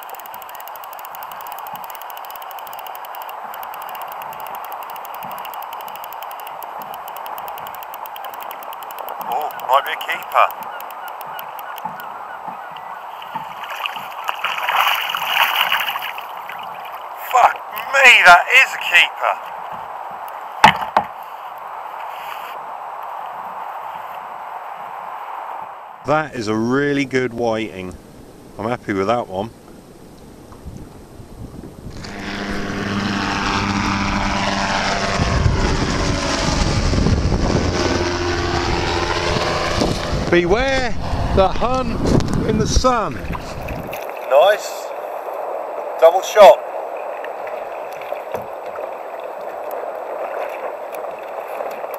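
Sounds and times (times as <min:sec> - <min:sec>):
gyrocopter engine droning overhead: 0:00.0 - 0:13.6, 0:31.8 - 0:43.9
small waves slapping a kayak: 0:00.0 - 0:18.2, 0:42.8 - 0:51.9
flock of birds calling: 0:09.0 - 0:14.3.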